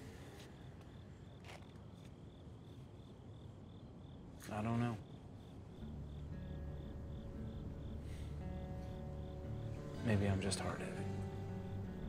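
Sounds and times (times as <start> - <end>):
cricket chirping: 0.0 - 12.0
soft low film score music: 4.5 - 12.0.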